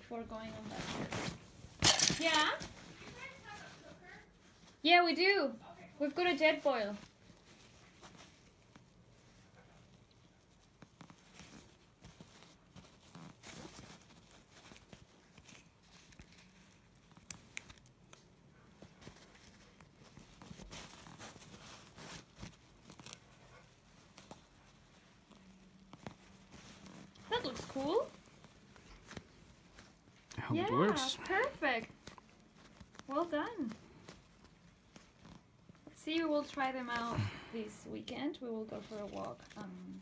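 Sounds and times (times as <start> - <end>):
patch rustling and crinkling: 0.0 - 40.0.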